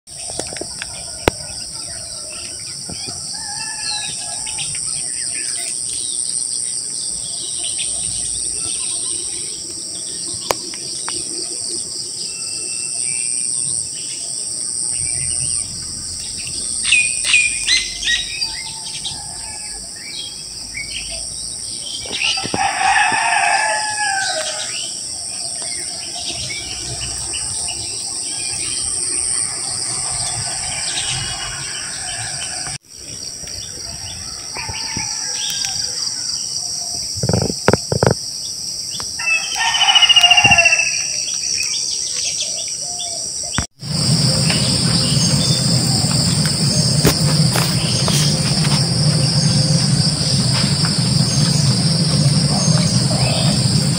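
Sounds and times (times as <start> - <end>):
insect chorus: 0.1 - 53.9
rooster crowing: 3.1 - 4.8, 18.1 - 20.1, 22.2 - 24.9, 29.6 - 32.8, 33.8 - 36.5, 39.2 - 41.2, 44.6 - 53.9.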